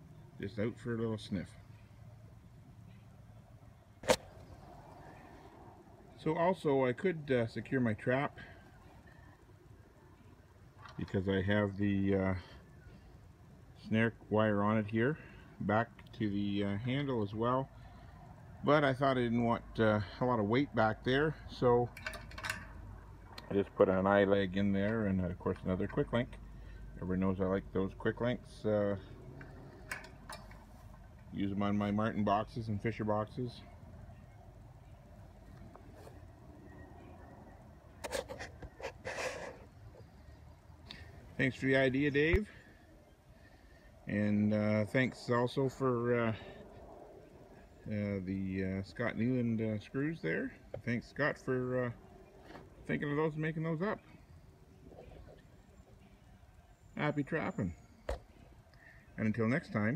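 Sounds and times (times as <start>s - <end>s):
faint outdoor background: 0.0s - 59.9s
sharp click: 4.0s - 4.3s.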